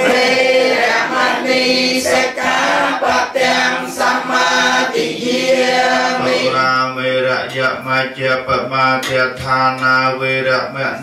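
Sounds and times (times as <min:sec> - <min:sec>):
male voices chanting in unison: 0:00.0 - 0:11.0.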